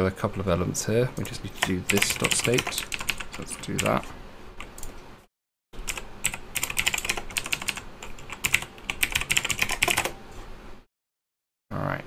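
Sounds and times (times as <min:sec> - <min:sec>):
computer keyboard typing: 0:01.2 - 0:04.9, 0:05.8 - 0:10.2.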